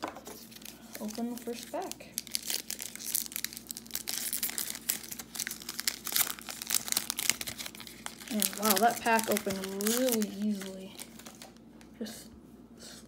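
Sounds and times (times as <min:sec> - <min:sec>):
foil wrapper crinkling and tearing: 0:00.3 - 0:11.6.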